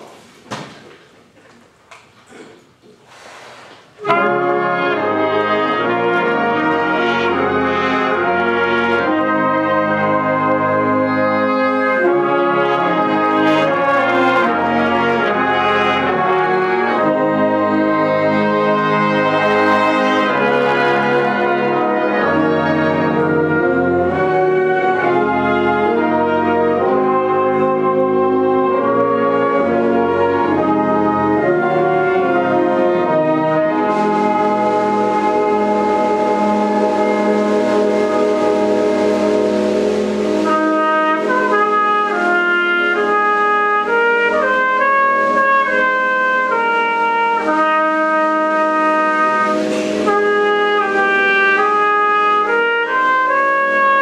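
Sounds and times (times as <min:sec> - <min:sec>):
wind band playing sustained chords: 0:04.0 - 0:54.0.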